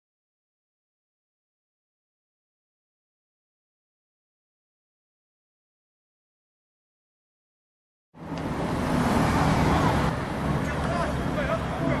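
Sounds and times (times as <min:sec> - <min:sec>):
road traffic: 0:08.2 - 0:12.0.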